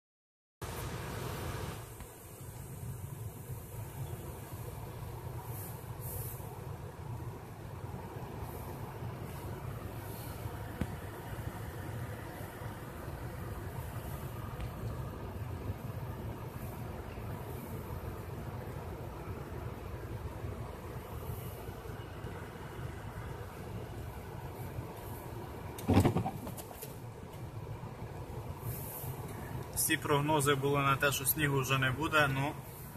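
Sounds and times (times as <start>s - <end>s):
car engine drone: 0.6s - 32.9s
loud thump: 25.8s - 26.7s.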